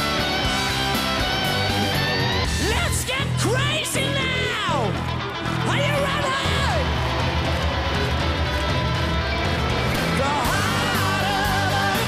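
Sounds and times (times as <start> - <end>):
bass guitar: 0.0 - 12.0
distorted electric guitar: 0.0 - 12.0
drums: 0.0 - 12.0
lead vocal singing: 10.0 - 12.0.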